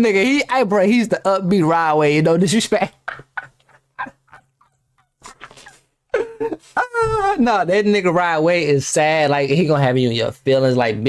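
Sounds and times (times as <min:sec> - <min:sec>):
people talking: 0:00.0 - 0:03.2, 0:06.2 - 0:11.0
man's stifled vocal outbursts: 0:06.7 - 0:07.8.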